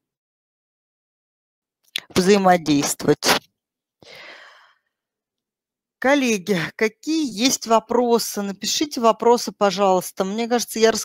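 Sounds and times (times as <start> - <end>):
woman sighing breath: 4.0 - 4.8.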